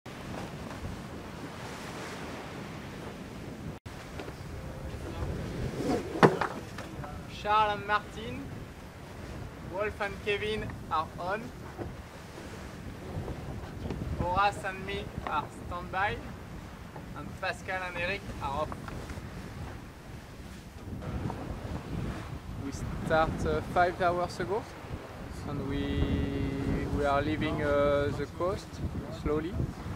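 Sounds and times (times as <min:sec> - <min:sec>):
rush of wind and sea: 0:00.0 - 0:29.9
wind buffeting microphone: 0:00.1 - 0:29.9.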